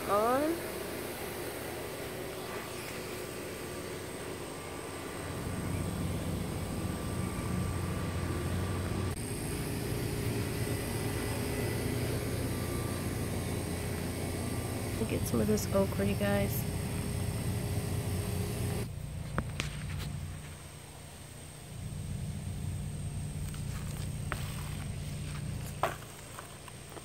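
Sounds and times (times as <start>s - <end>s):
low engine-like drone: 0.0s - 27.0s.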